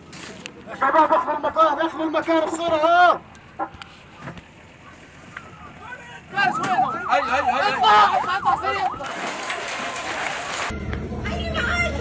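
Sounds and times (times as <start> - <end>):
siren yelping: 5.2 - 10.0.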